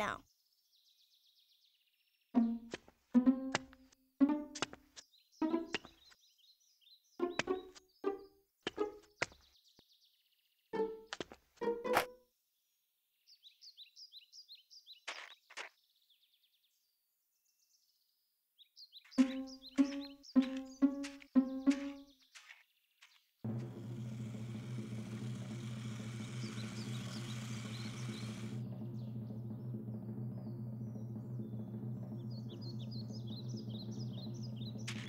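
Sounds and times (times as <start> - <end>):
birds chirping: 0.0 - 2.7, 4.4 - 11.9, 18.6 - 35.0.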